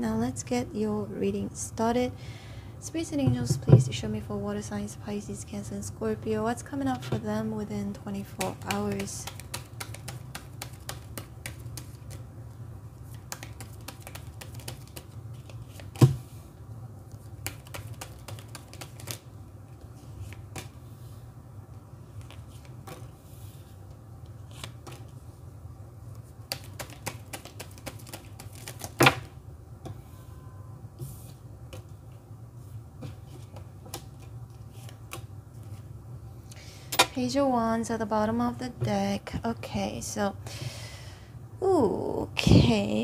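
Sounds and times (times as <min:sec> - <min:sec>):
cards shuffled and dealt: 0:08.2 - 0:12.2, 0:13.0 - 0:16.2, 0:17.2 - 0:19.2, 0:22.1 - 0:23.2, 0:24.4 - 0:25.2, 0:26.5 - 0:29.3.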